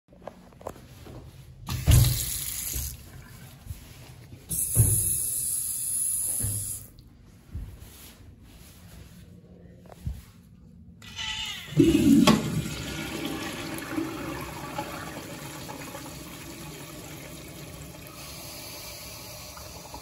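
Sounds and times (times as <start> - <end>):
faucet water running: 1.7 - 3.4, 11.7 - 20.0
faucet thump: 12.1 - 12.6.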